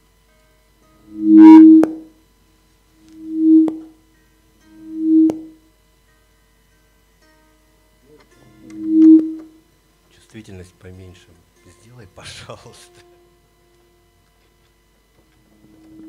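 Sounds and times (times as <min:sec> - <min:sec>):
instrument playing low note: 0:01.1 - 0:02.0, 0:03.2 - 0:03.9, 0:04.8 - 0:05.6, 0:08.7 - 0:09.4.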